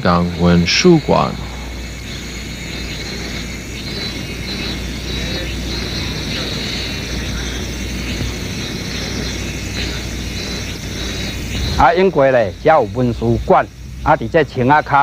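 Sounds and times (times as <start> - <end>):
even hiss: 0.0 - 15.0
faint voices: 0.0 - 15.0
low rumble: 0.8 - 14.8.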